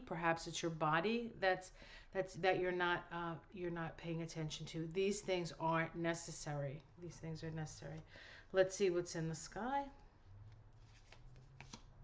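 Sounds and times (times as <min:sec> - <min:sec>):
card rustling and ticking: 0:10.4 - 0:12.0.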